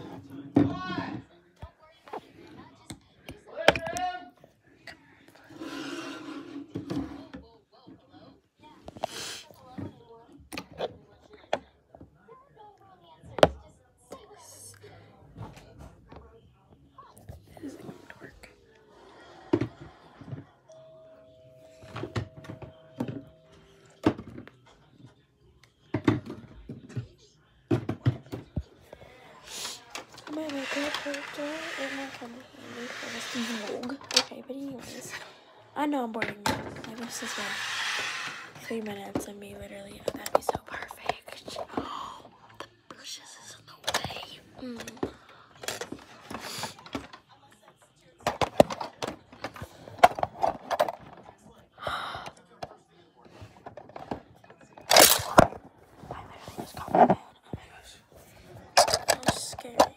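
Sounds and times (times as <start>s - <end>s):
rubbing and rustling: 29.7s - 35.3s, 53.6s - 59.8s
girl's voice: 30.3s - 35.1s.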